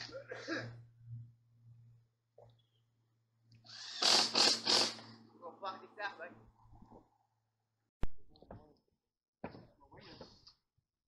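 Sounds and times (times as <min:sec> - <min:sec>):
noisy hissing burst: 0:03.7 - 0:05.1.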